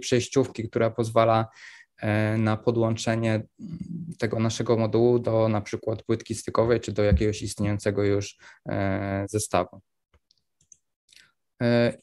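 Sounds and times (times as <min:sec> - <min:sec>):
man speaking: 0:00.0 - 0:09.8, 0:11.6 - 0:12.0.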